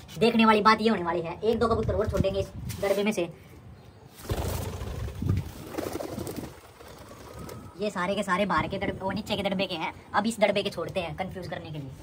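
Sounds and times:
pigeons cooing: 4.3 - 7.8.

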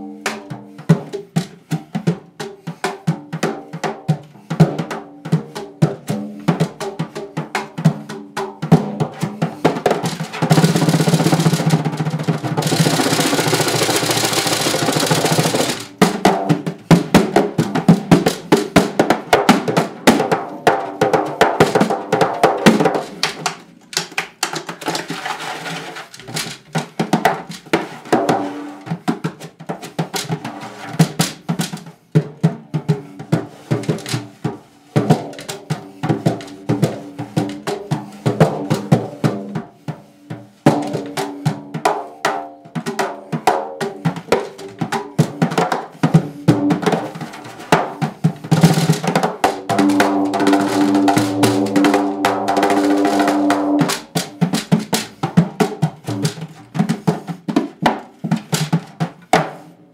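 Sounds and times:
hand rubbing drum head: 49.6 - 55.2.

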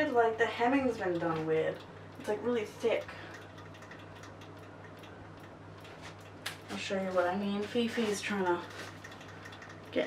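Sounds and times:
fast even ticking: 0.0 - 10.0.

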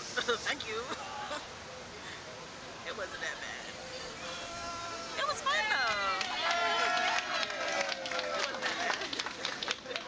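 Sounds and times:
people laughing and exclaiming: 4.0 - 10.0.

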